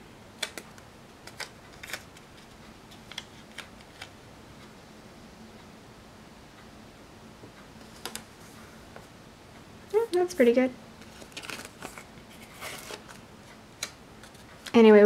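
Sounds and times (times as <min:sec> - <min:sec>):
faint room hiss: 0:00.0 - 0:15.0.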